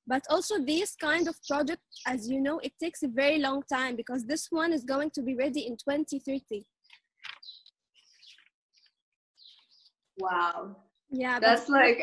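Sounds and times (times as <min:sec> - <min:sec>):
faint bird chirping: 0:00.1 - 0:11.2.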